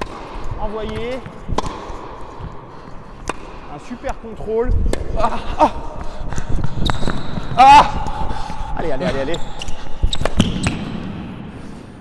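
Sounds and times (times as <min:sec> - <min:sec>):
tennis ball hits and bounces: 0:00.0 - 0:02.2, 0:03.2 - 0:03.8.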